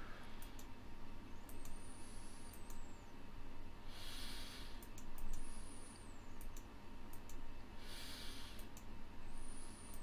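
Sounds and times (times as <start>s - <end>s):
faint computer mouse clicks: 0.4s - 0.7s, 1.4s - 1.8s, 2.5s - 2.9s, 4.8s - 5.5s, 6.3s - 7.4s, 8.6s - 8.9s.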